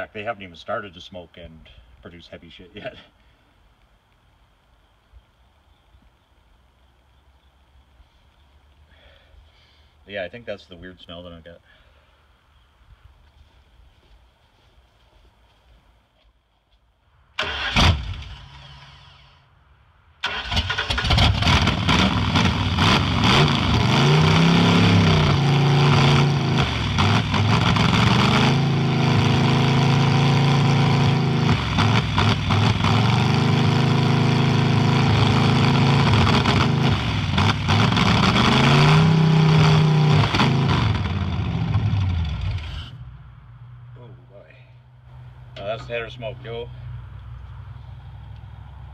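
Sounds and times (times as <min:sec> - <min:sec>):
engine coughing and starting: 0:17.4 - 0:19.4, 0:20.2 - 0:28.6
engine revving loudly: 0:20.3 - 0:42.9.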